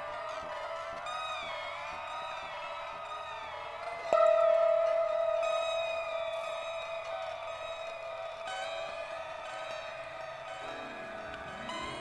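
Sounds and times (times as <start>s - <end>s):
instrumental music with held notes: 4.0s - 12.0s.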